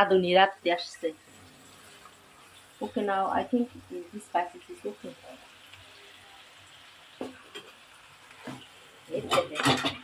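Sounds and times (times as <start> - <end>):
masala sizzling in a pan: 0.0 - 10.0.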